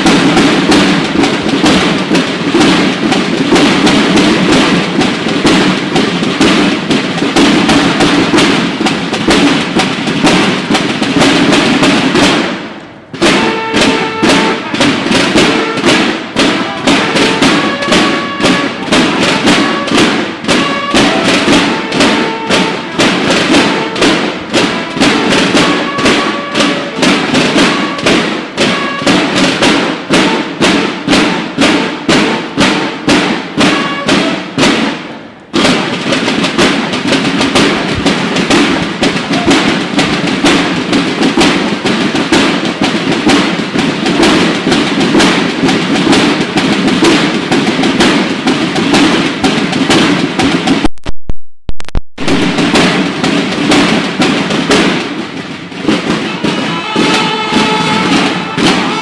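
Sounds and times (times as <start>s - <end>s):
snare drums marching cadence: 0.0s - 51.1s, 51.8s - 59.0s.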